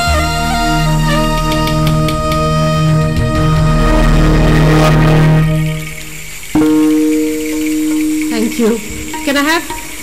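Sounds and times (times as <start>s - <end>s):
violin bowed double stop: 0.0s - 6.8s
woman speaking: 8.3s - 9.9s.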